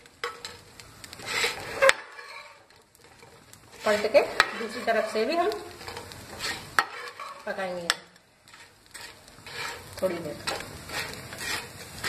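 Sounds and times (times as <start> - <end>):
metal spatula scraping and tapping: 0.0 - 12.0
oil sizzling: 0.0 - 12.0.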